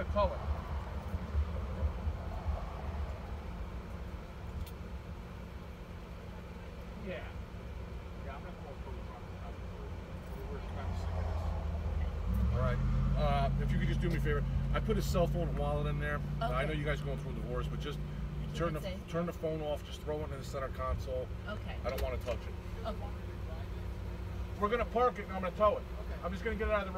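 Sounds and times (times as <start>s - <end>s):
car engine rumbling: 0.0s - 26.9s.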